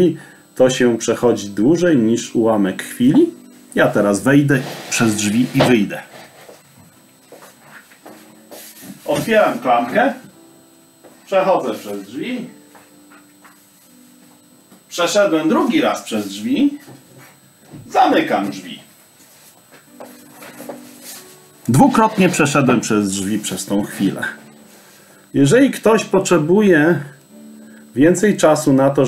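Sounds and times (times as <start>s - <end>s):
faint footsteps: 5.0s - 9.5s, 11.0s - 12.0s, 12.6s - 14.9s, 16.8s - 17.9s, 18.5s - 22.3s.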